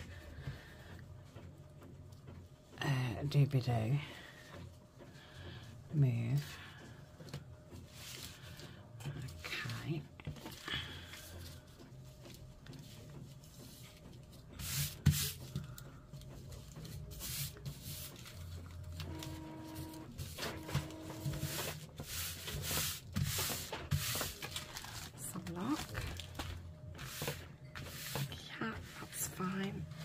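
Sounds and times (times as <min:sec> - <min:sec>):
steady hum: 0:00.0 - 0:30.0
cloth rustling: 0:20.9 - 0:28.3.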